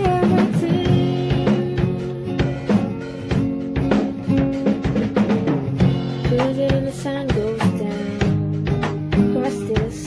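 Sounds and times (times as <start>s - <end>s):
woman singing: 0.0s - 2.9s, 6.1s - 10.0s
acoustic guitar chords: 0.0s - 10.0s
drum kit beat: 0.0s - 10.0s.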